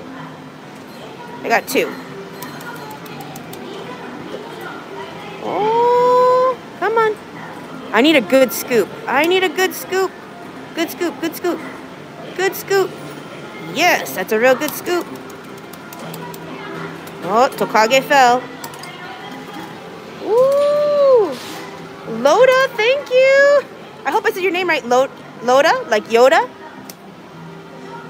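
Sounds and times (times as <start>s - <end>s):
faint background voices: 0.0s - 28.0s.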